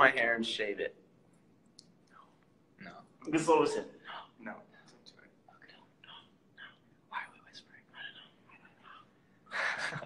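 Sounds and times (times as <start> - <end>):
whispered speech: 4.1 - 9.1.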